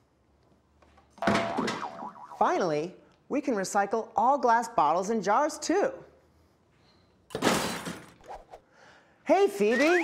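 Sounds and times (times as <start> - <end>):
wobbling comic sound effect: 1.2 - 2.5.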